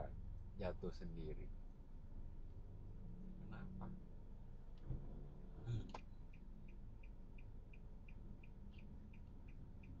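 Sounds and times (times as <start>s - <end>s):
low rumble inside car: 0.0s - 10.0s
car indicator ticking: 6.0s - 10.0s.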